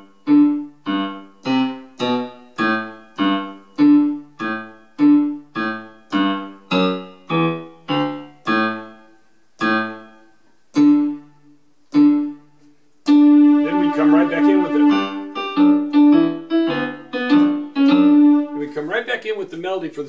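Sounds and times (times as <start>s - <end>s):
electronic keyboard piano melody: 0.0s - 19.0s.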